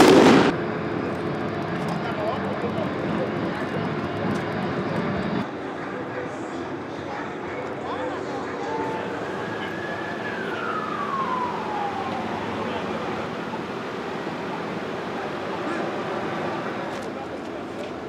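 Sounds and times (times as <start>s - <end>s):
loud explosive bang: 0.0s - 0.6s
street noise: 0.0s - 18.0s
voices: 0.9s - 18.0s.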